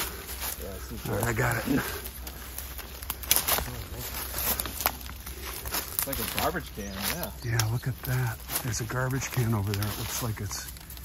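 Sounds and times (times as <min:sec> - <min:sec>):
footsteps through undergrowth: 0:00.0 - 0:11.0
leaves and branches rustling: 0:00.0 - 0:11.0
twigs snapping: 0:00.0 - 0:11.0.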